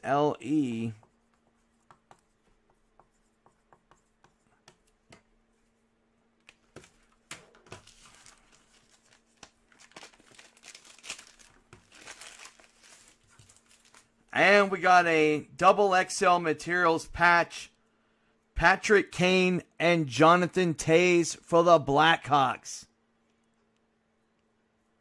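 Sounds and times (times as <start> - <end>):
foil wrapper crinkling and tearing: 7.7 - 14.1.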